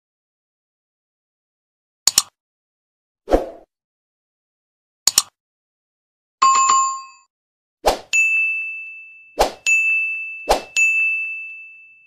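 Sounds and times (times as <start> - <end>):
bright chime ding: 8.2 - 12.0.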